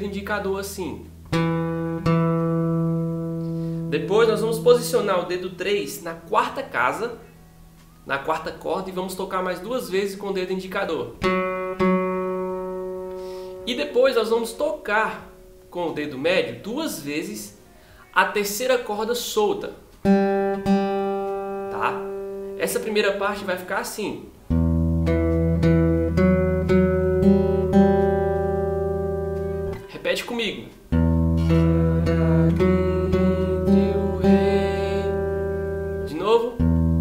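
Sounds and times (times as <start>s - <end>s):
acoustic guitar note plucked: 0.6s - 8.1s, 11.0s - 18.2s, 20.0s - 22.8s, 24.4s - 30.0s, 30.6s - 37.0s.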